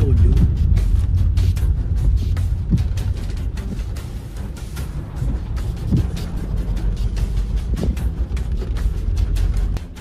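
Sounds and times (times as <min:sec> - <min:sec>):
background music with steady beat: 0:00.0 - 0:10.0
car cabin rumble: 0:00.0 - 0:10.0.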